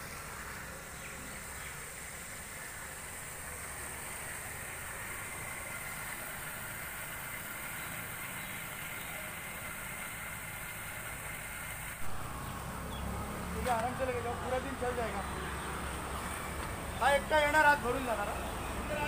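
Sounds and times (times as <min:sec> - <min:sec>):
even hiss: 0:00.0 - 0:15.1.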